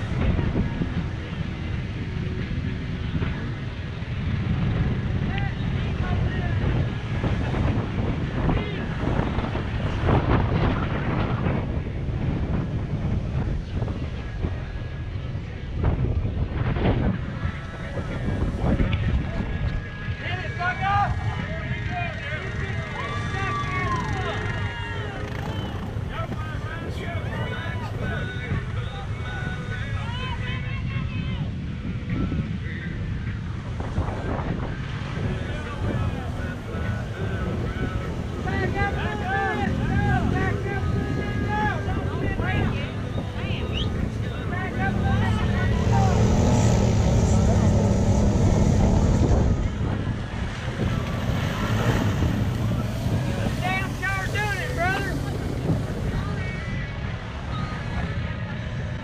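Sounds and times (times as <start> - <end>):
atv engine rumbling: 0.0 - 30.4, 31.4 - 59.0
wind buffeting microphone: 0.0 - 59.0.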